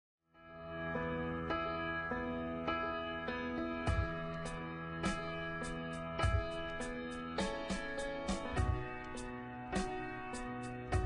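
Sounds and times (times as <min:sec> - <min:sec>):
soft ambient music: 0:00.4 - 0:11.0.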